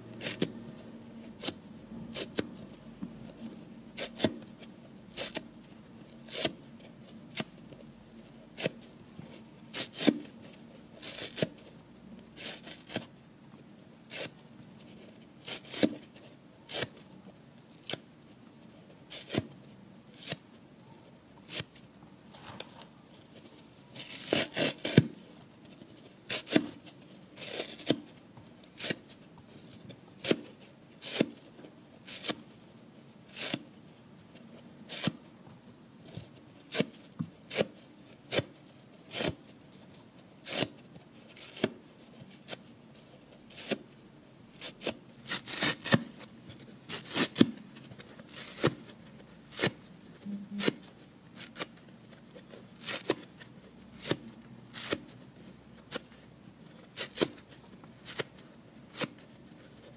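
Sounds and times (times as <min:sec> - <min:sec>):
sponge being torn apart: 0:44.6 - 0:46.1, 0:46.9 - 0:47.6, 0:48.2 - 0:48.8, 0:52.8 - 0:53.3, 0:54.0 - 0:55.1, 0:56.9 - 0:57.4, 0:58.0 - 0:59.2.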